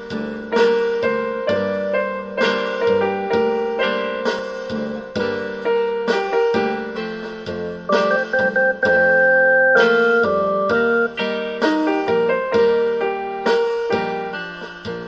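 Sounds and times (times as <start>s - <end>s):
piano ballad on digital keyboard: 0.0s - 15.0s.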